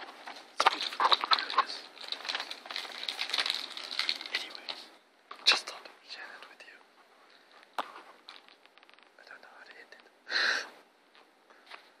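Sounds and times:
person whispering: 4.3s - 6.9s, 9.2s - 10.2s.

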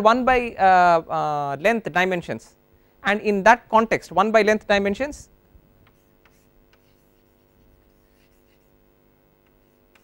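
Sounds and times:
steady low hum: 0.0s - 10.0s
chalk scratching on chalkboard: 5.9s - 8.8s, 9.5s - 10.0s.

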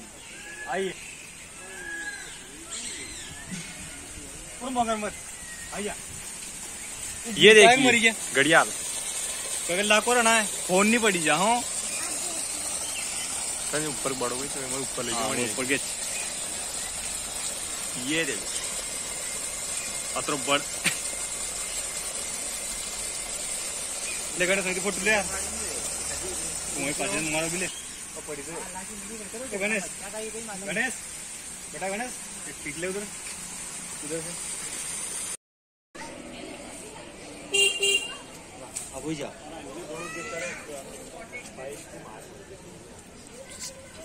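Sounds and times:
high-pitched hiss: 0.0s - 35.4s, 37.5s - 44.0s
low outdoor background noise: 0.0s - 35.4s, 36.0s - 44.0s
vehicle horn honking: 37.5s - 38.2s.

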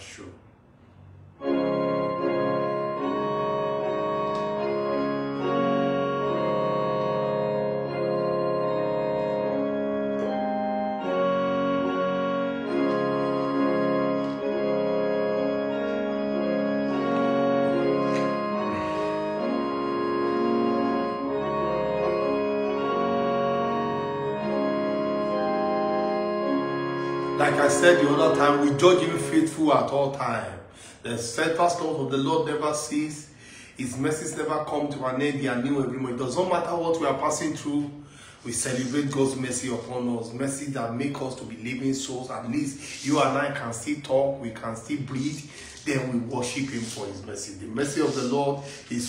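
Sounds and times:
electronic organ playing hymn: 1.2s - 49.0s.

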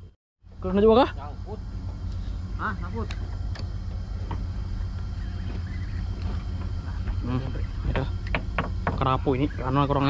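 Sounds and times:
engine droning: 0.0s - 10.0s.

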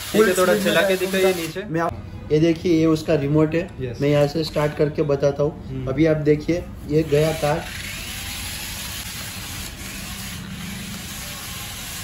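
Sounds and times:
toy car motor whirring: 7.1s - 12.0s.

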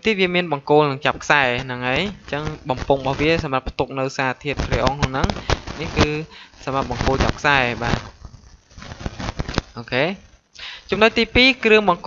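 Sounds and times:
person talking: 0.0s - 8.1s, 9.7s - 12.0s.

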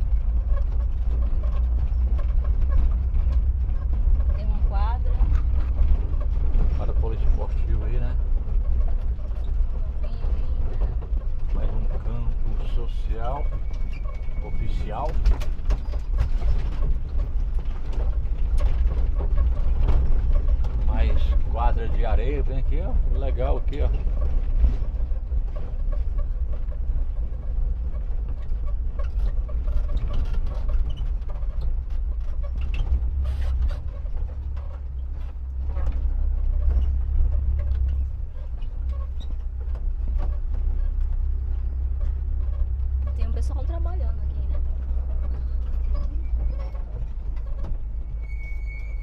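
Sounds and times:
knocks and rattles from bumps: 0.0s - 49.0s
vehicle rumbling on dirt track: 0.0s - 49.0s.

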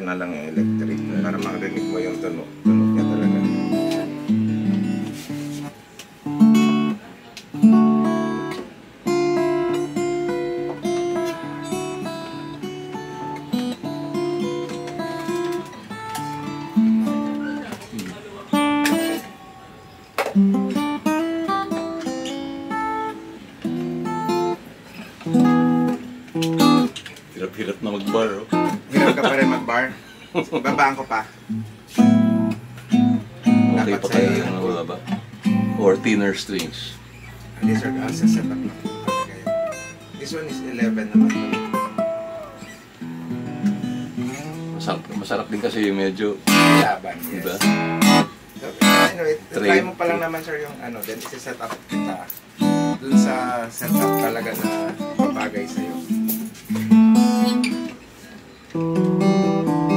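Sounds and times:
acoustic guitar playing: 0.0s - 59.9s.

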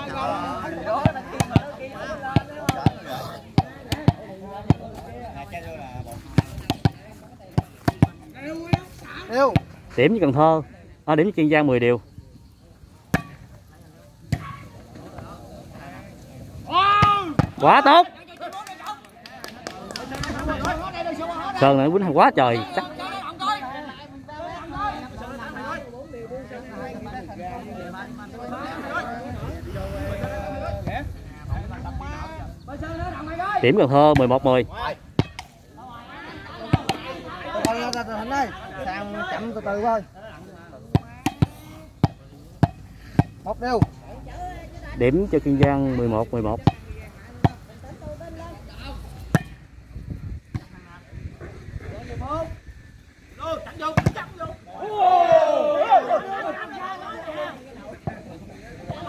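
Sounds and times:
murmuring crowd: 0.0s - 59.0s
volleyball being struck: 2.3s - 3.0s, 13.1s - 13.4s, 35.2s - 35.5s, 36.7s - 37.9s, 40.9s - 44.0s, 49.3s - 49.6s.

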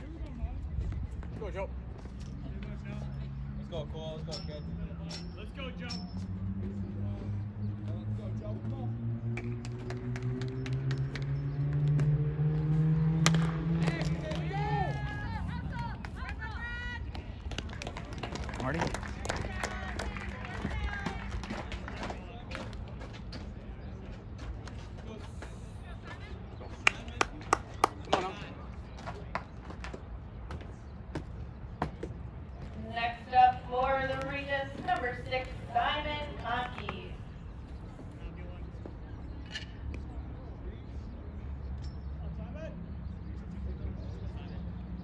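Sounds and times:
low outdoor background: 0.0s - 45.0s
bat cracking ball: 13.2s - 14.5s
sharp knocks or claps: 13.2s - 14.5s
spectators shouting: 13.8s - 17.1s.

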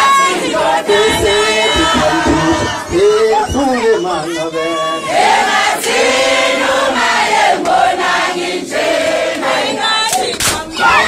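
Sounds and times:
crowd singing together: 0.0s - 4.2s, 5.0s - 11.0s.

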